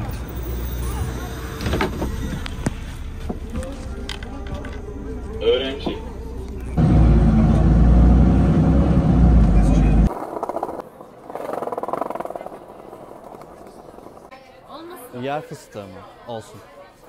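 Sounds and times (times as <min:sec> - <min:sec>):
skateboard wheels rolling on concrete: 0:09.3 - 0:16.1.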